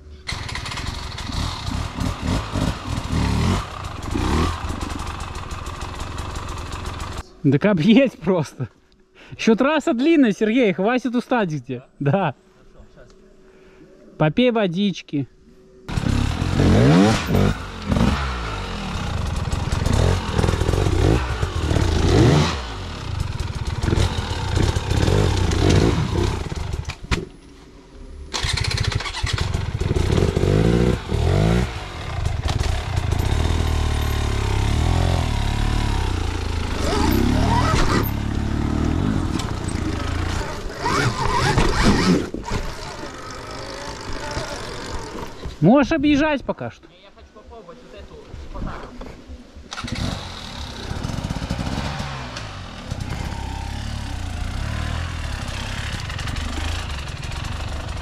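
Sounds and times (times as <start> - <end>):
motorcycle engine revving: 0.3 - 7.2, 15.9 - 27.3, 28.1 - 45.6, 49.6 - 58.0.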